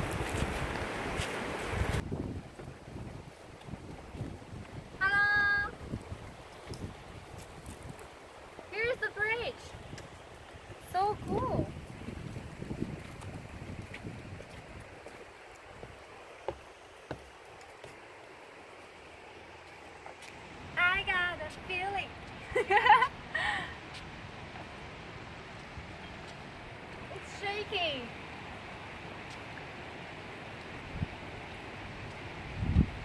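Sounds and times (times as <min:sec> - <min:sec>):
river water rushing over rapids: 0:00.0 - 0:05.0, 0:05.7 - 0:22.5.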